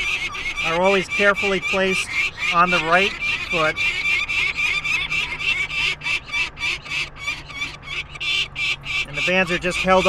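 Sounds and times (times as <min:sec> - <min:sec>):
falcon chick crying: 0:00.0 - 0:10.0.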